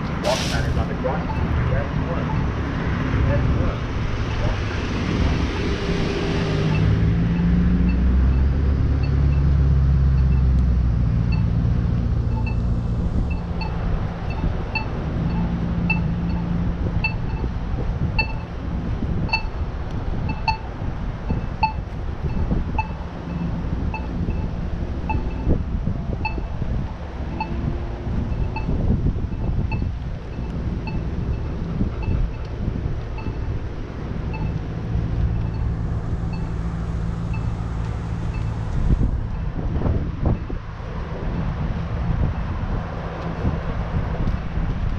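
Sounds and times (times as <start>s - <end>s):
heavy vehicle rumbling by: 0.0s - 44.9s
road traffic: 0.0s - 44.9s
wind on microphone: 0.0s - 44.9s
crossing signal ticking tone: 1.0s - 2.5s, 6.7s - 10.6s, 11.2s - 17.6s, 18.2s - 18.6s, 19.2s - 19.6s, 20.2s - 26.6s, 27.3s - 33.6s, 34.2s - 39.5s.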